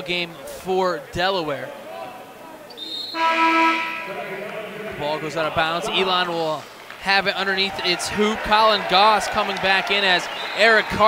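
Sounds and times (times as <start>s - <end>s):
scorer's table horn: 2.8s - 4.6s.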